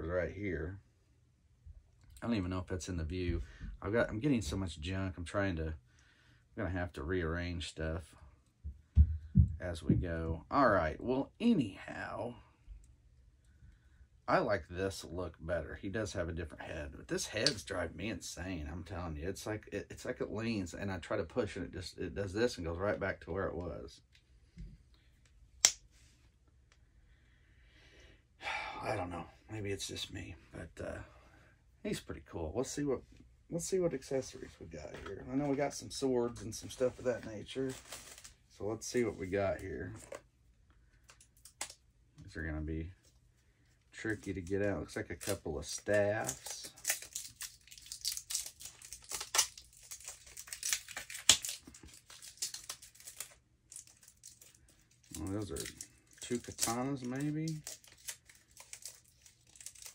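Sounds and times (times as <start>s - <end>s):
plastic packaging crinkling: 36.6s - 40.2s, 44.1s - 59.9s.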